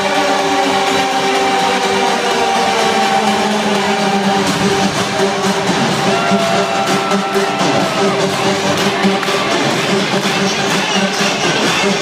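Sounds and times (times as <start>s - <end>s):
electronic house music: 0.0s - 12.0s
crowd cheering: 5.4s - 11.5s.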